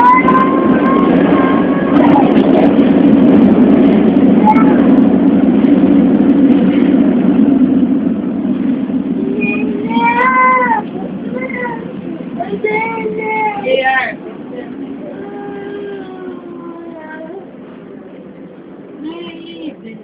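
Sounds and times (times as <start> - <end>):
metro car rumbling: 0.0 - 20.0
toddler whining cries: 9.4 - 11.9.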